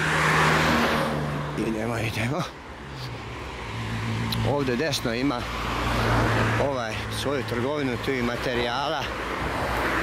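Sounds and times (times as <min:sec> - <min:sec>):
car passing: 0:00.0 - 0:10.0
low hum of traffic: 0:00.0 - 0:10.0.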